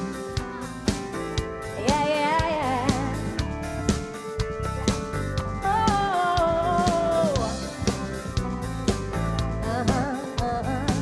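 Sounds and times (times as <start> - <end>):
bass: 0.0 - 11.0
live band music: 0.0 - 11.0.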